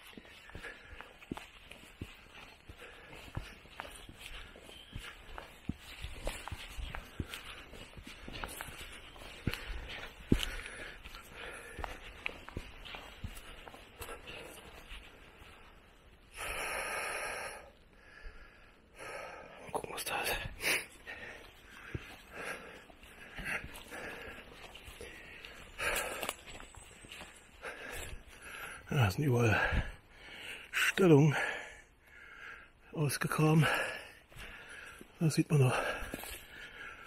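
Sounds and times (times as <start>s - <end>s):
person breathing: 0.0s - 28.9s, 29.5s - 30.7s, 31.3s - 32.9s, 33.6s - 37.0s
footsteps on dirt path: 0.0s - 37.0s.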